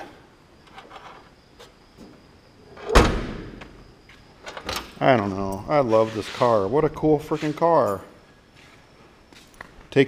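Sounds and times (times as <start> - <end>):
car trunk lid slamming: 2.8 - 3.6.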